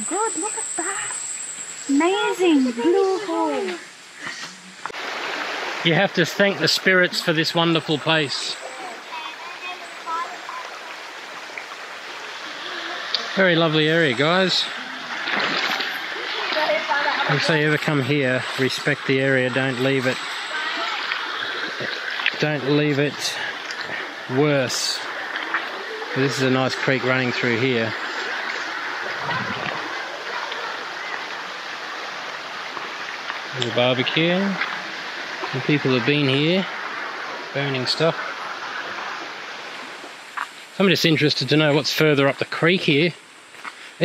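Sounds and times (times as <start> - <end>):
creek rushing into pool: 0.1 - 44.0.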